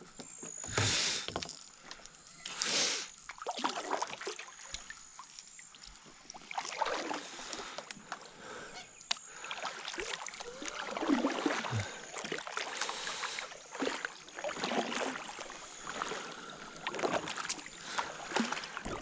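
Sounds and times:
kayak paddle strokes in water: 0.2s - 1.6s, 2.5s - 19.0s
water drips and small splashes: 0.2s - 19.0s.

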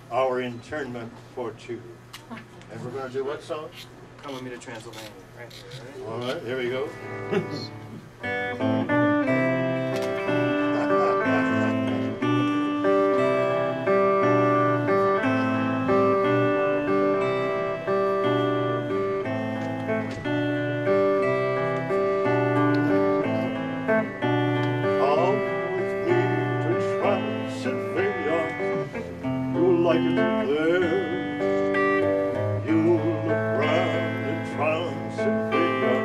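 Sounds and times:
electric guitar melody: 6.5s - 36.0s
person laughing: 7.2s - 7.8s, 10.2s - 12.4s.

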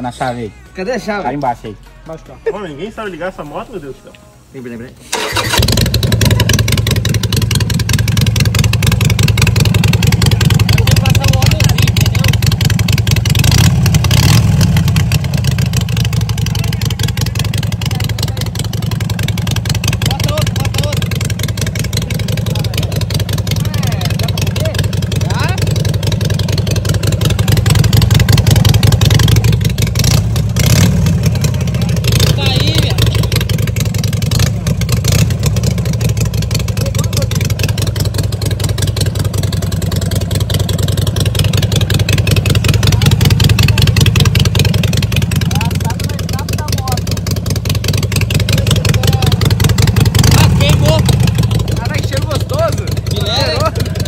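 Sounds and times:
motorcycle engine revving: 5.1s - 54.0s.

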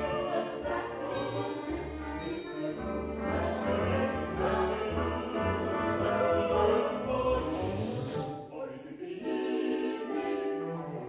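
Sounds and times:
operatic voices singing: 0.0s - 11.0s
orchestra: 0.0s - 11.0s.

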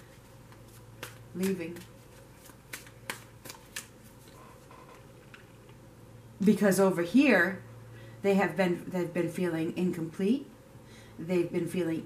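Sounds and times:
cards shuffling: 0.1s - 5.5s.

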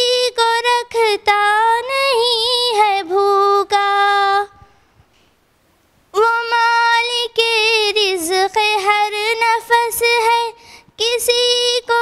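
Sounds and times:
girl singing into microphone: 0.0s - 4.9s, 6.1s - 12.0s.

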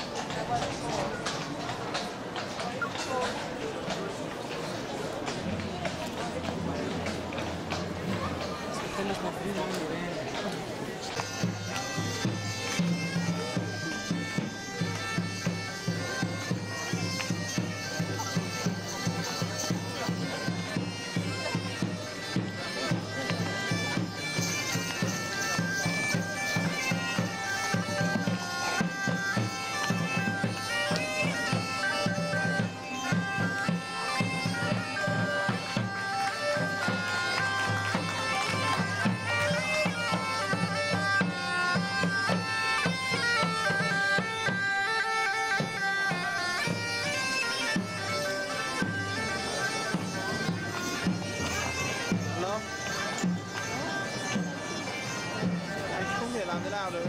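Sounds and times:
bagpipes playing: 6.4s - 57.0s.

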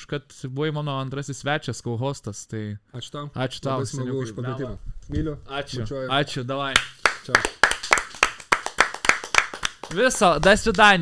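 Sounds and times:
people clapping hands: 6.7s - 11.0s.

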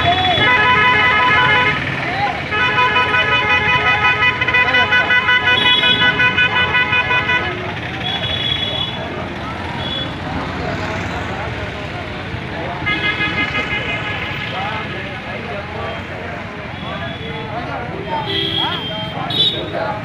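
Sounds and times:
voices: 0.0s - 20.0s.

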